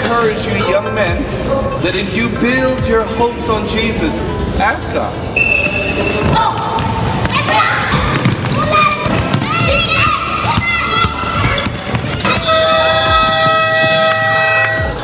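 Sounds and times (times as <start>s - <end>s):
children's voices: 6.3s - 12.5s
basketball dribbling on court: 6.6s - 15.0s.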